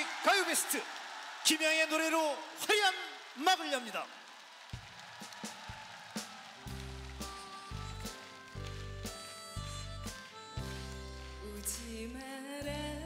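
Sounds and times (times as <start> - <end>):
keyboard and bass chords: 6.7 - 13.0.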